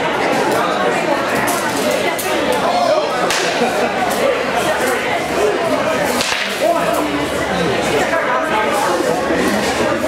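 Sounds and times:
people talking: 0:00.0 - 0:10.0
fencing blade crack: 0:06.1 - 0:06.6.

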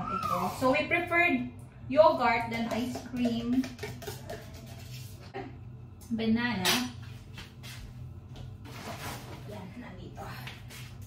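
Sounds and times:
low steady hum: 0:00.0 - 0:11.0
spoon scraping carton: 0:03.4 - 0:05.3.

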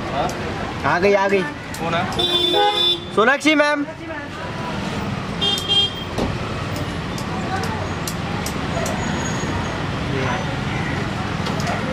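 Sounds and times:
street traffic rumble: 0:00.0 - 0:11.9.

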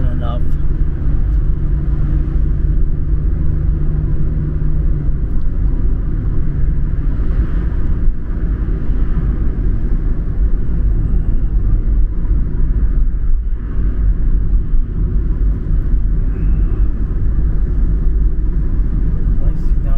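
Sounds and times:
car driving on highway: 0:00.0 - 0:19.9
low steady hum: 0:00.0 - 0:19.9.

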